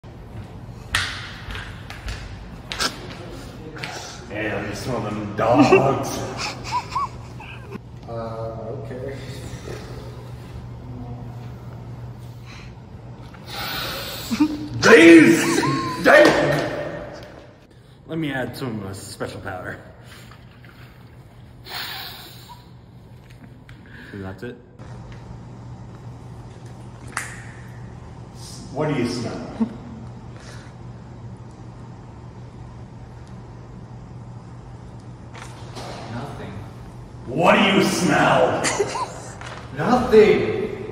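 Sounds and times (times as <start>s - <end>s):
low steady hum: 0.0s - 40.9s
person sniffing hard: 13.5s - 14.3s, 21.6s - 22.7s.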